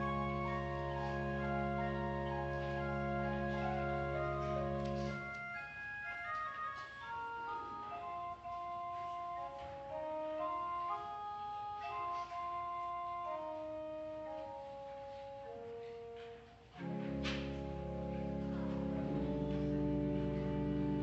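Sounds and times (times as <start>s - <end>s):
church organ playing slow melody: 0.0s - 21.0s.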